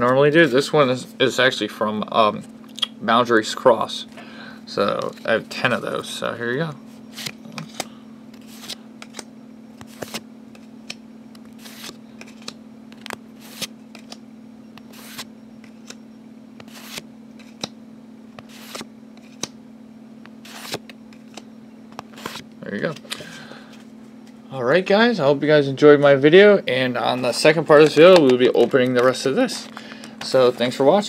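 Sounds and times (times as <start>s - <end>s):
steady low hum: 0.0s - 31.0s
cards clicking and sliding: 7.1s - 14.2s, 14.8s - 16.0s, 16.6s - 17.8s, 18.4s - 19.6s, 20.2s - 23.8s.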